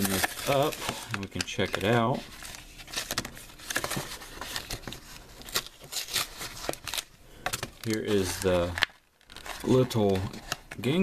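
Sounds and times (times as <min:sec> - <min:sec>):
plastic blister pack crinkling: 0:00.0 - 0:11.0.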